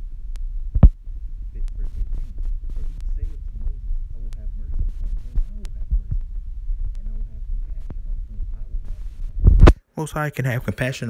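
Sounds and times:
low uneven rumble: 0.0 - 9.8
low vocal murmurs: 1.5 - 9.2.

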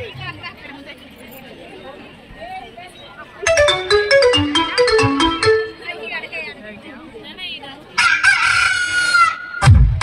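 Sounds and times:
electronic dance beat: 3.5 - 5.8.

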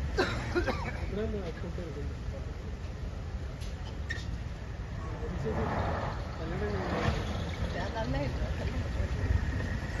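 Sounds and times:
people talking: 5.0 - 9.8.

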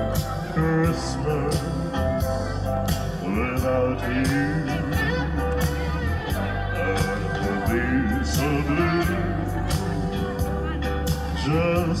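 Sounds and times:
backing music with steady beat: 0.0 - 12.0
man singing through microphone: 0.0 - 12.0.

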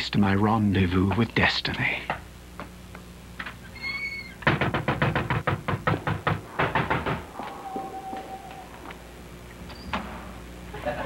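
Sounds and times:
knocking on a door: 4.4 - 7.3.

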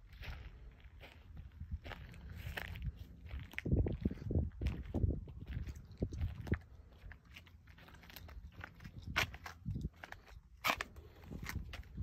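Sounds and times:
footsteps on asphalt: 0.0 - 12.0.

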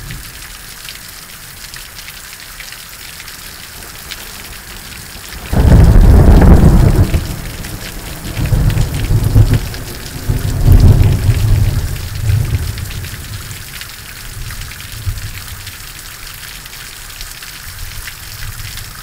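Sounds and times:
steady rain: 0.0 - 19.0
thunder crack and rumble: 5.3 - 13.6.

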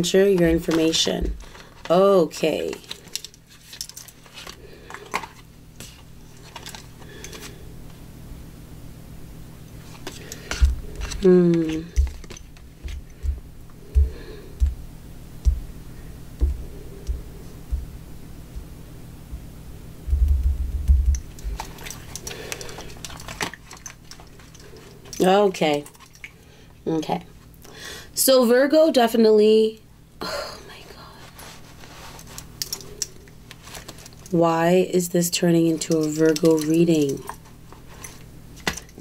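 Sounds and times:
faint steady hum: 0.0 - 39.0
dull low thudding rumble: 12.8 - 21.3.

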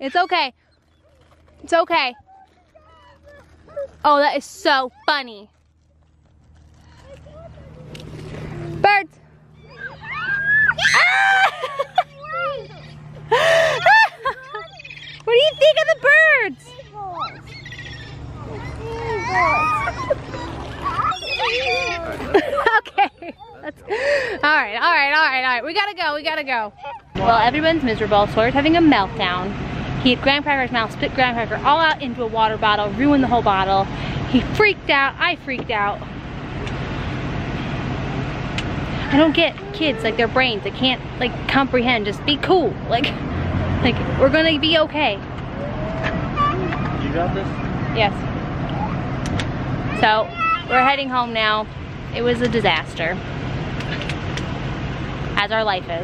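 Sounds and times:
vehicle engine rumbling: 0.0 - 56.0
children squealing: 9.5 - 22.4, 45.5 - 47.1, 49.8 - 50.9.

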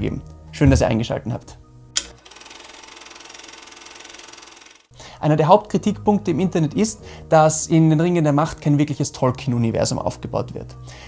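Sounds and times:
rapid mechanical clatter: 2.1 - 4.9.

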